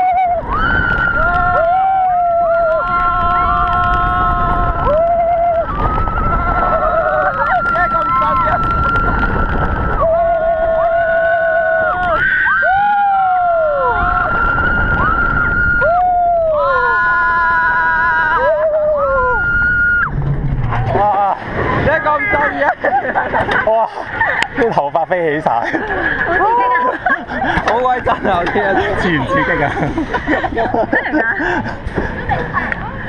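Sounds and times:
people screaming: 0.0 - 24.6, 25.7 - 29.8
roller coaster rumbling on track: 0.0 - 33.0
wind rushing: 0.3 - 11.0, 13.3 - 17.8, 18.6 - 24.5.

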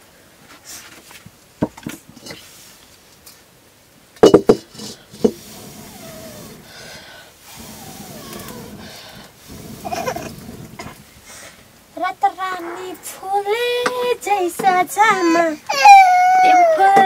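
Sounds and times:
faint wavering high cries: 12.0 - 17.0.

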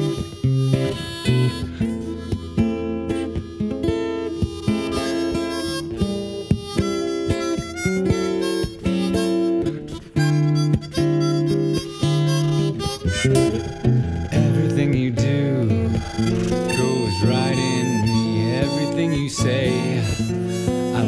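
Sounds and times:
harmonica: 0.0 - 21.0
plucked acoustic guitar: 0.0 - 21.0.

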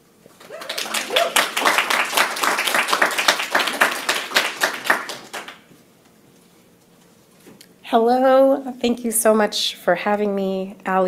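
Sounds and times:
audience applauding: 0.3 - 5.7.

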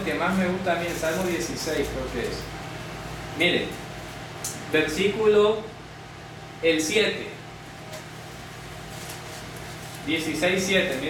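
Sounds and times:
room hum and hiss: 0.0 - 11.0.

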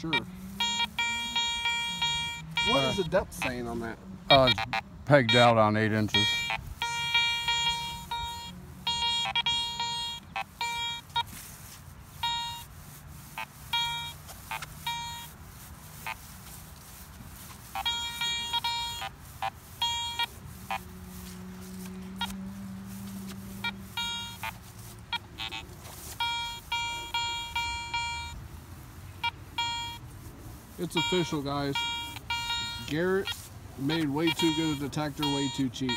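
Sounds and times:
metal detector beeping: 0.0 - 28.4, 29.2 - 30.1, 30.8 - 35.9.

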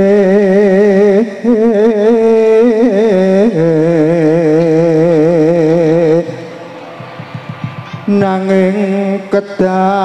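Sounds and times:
man singing with vibrato: 0.0 - 6.8, 7.7 - 10.0.

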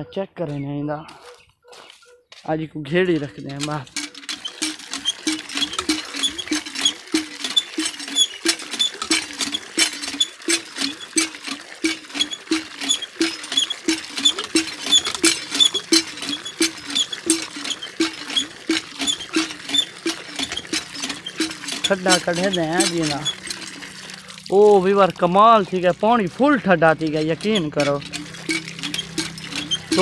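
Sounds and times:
hand pump creaking squeak: 0.0 - 30.0
water splashing: 3.1 - 30.0.

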